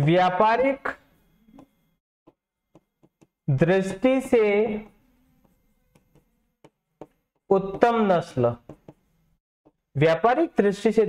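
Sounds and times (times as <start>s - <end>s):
marker writing on whiteboard: 2.3s - 3.4s, 4.8s - 9.9s.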